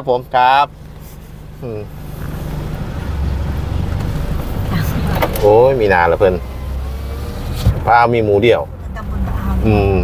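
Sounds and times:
vehicle engine idling and revving: 0:00.0 - 0:10.0.

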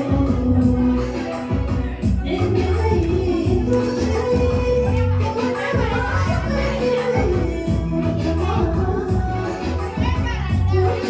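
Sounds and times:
band with prominent bass line: 0:00.0 - 0:11.0
woman singing into microphone: 0:00.0 - 0:11.0.

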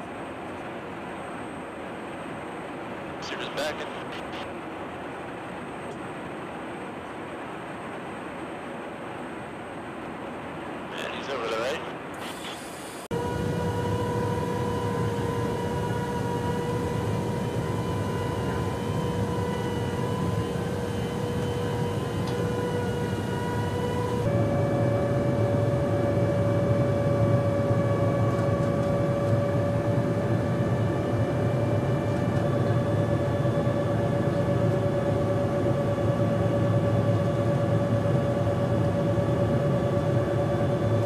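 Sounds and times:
jet aircraft rumble with whine: 0:00.0 - 0:41.0.

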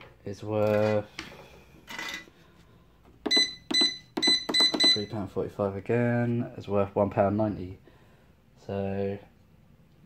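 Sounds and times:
scale keypad beeping: 0:03.3 - 0:05.1.

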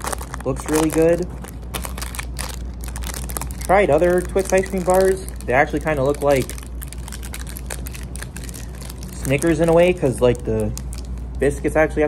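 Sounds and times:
foil wrapper crinkling: 0:00.0 - 0:11.8
low hum: 0:00.0 - 0:12.0.

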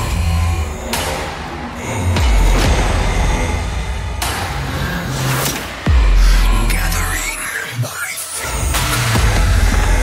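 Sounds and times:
distorted bass music: 0:08.6 - 0:10.0.

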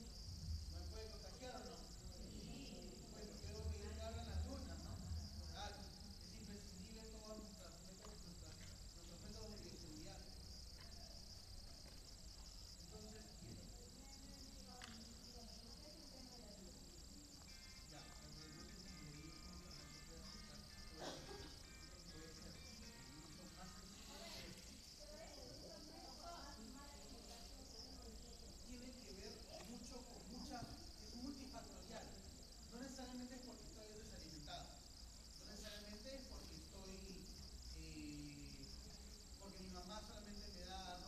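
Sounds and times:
steady high hiss: 0:00.0 - 0:41.0.

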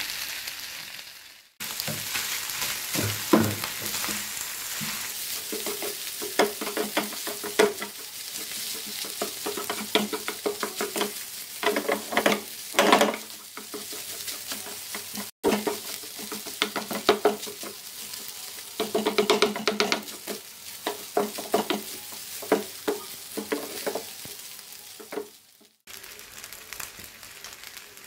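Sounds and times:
rice sizzling in a frying pan: 0:00.0 - 0:28.0
wooden spatula scraping a pan: 0:01.7 - 0:24.1.

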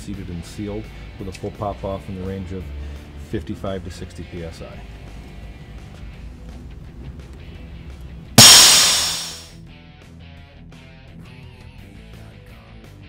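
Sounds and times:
loud compressed air hiss: 0:08.4 - 0:09.5.

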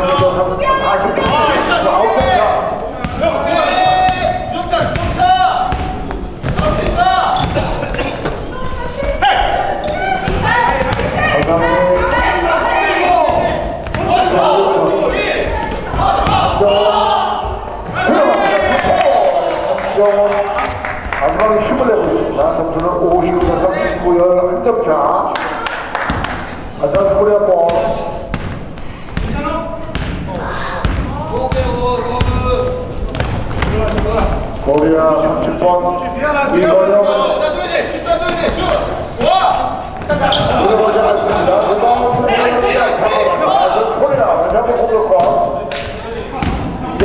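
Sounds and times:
people shouting: 0:03.2 - 0:04.5, 0:08.8 - 0:19.7
basketball bouncing on hardwood floor: 0:29.2 - 0:32.4.

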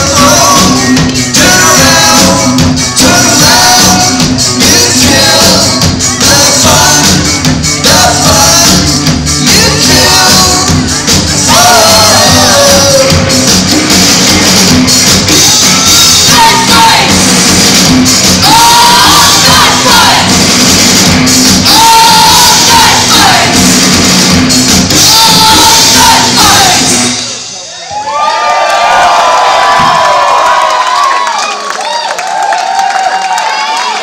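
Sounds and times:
live rock band with singing: 0:00.0 - 0:27.6
audience cheering and whooping: 0:27.7 - 0:34.0.

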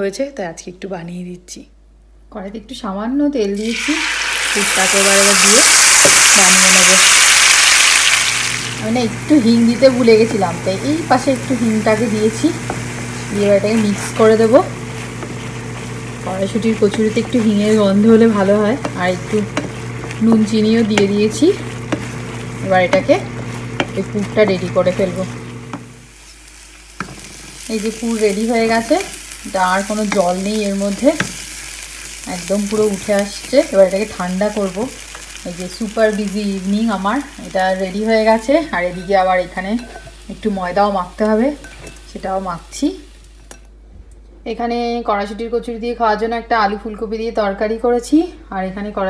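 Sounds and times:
paste sizzling in hot oil: 0:03.5 - 0:43.6.

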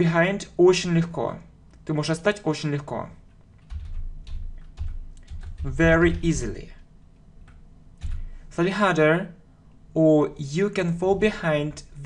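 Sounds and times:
computer keyboard typing: 0:03.3 - 0:06.6, 0:07.4 - 0:08.4.

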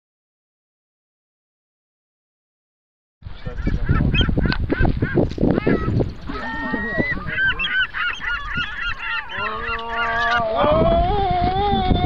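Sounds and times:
young voices shrieking and hooting: 0:05.5 - 0:12.0
long held cry: 0:05.6 - 0:07.4, 0:08.4 - 0:12.0.

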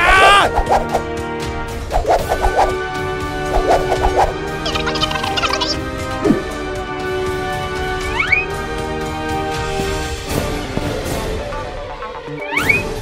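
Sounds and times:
background music: 0:00.0 - 0:13.0
cartoon gobble-like warbling: 0:04.6 - 0:05.8.

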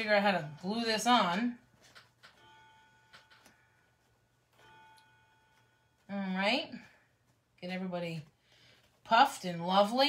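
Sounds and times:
faint steady tones: 0:00.0 - 0:09.1.

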